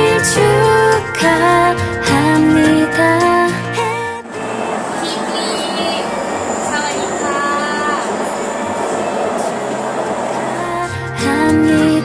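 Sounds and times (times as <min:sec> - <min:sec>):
metro train running: 0:00.0 - 0:12.0
faint high whine: 0:03.3 - 0:11.0.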